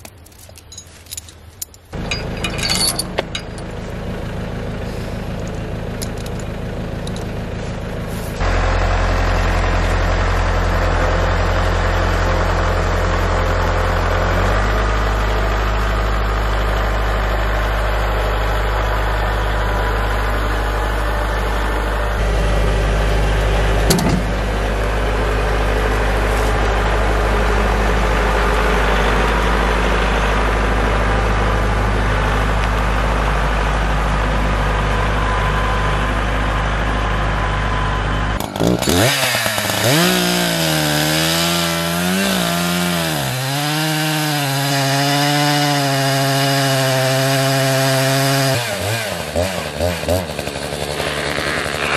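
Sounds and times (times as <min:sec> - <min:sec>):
tractor diesel engine running: 0:00.0 - 0:51.9.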